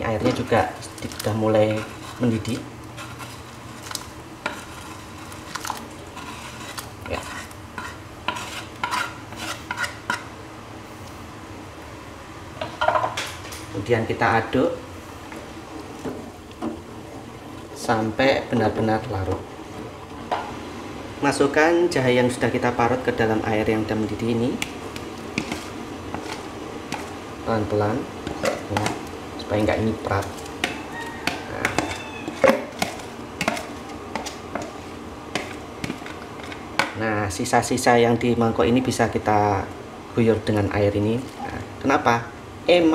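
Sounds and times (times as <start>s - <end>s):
water simmering: 0.0s - 8.3s
low background noise: 0.0s - 42.9s
ladle stirring water in pot: 0.2s - 10.2s, 30.2s - 36.8s
utensil tapping pot and bowl: 30.6s - 34.7s.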